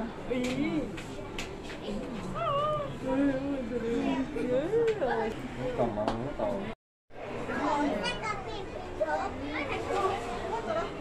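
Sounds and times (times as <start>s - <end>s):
children talking and calling out: 7.4s - 10.9s.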